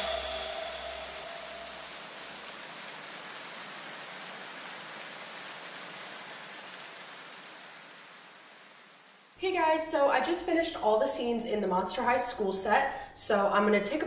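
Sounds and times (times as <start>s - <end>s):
faint even hiss: 0.0s - 11.4s.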